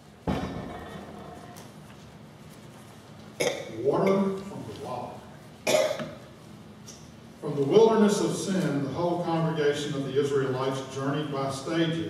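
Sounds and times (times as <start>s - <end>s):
person coughing: 5.6s - 6.2s.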